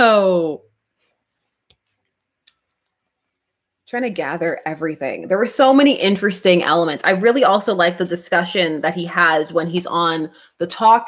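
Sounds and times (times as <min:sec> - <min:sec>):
woman speaking: 0:00.0 - 0:00.6, 0:03.9 - 0:11.0.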